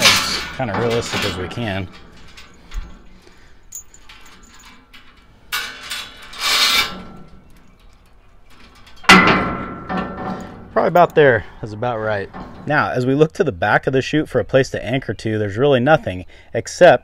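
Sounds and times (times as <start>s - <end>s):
chain clinking: 0.0s - 11.2s
chain links rattling: 0.0s - 11.2s
chain clanking against steel: 0.0s - 13.2s.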